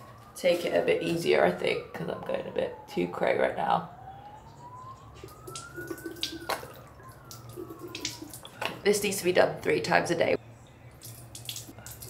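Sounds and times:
faint siren wailing: 0:00.0 - 0:10.9.

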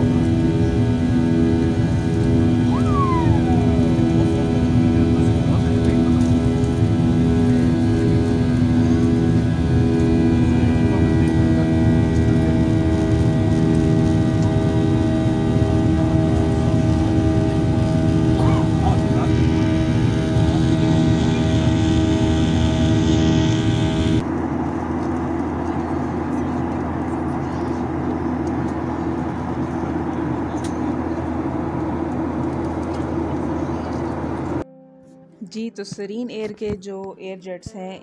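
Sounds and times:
jet airliner cabin drone: 0:00.0 - 0:34.9.

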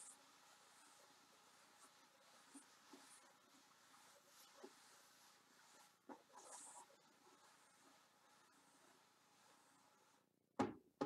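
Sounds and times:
hands brushing and tapping drum: 0:01.7 - 0:08.0.

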